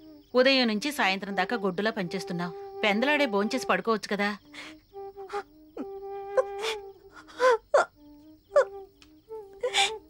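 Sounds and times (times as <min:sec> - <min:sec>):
background music with sustained notes: 0:00.0 - 0:10.0
woman sobbing: 0:04.5 - 0:07.9, 0:08.5 - 0:10.0.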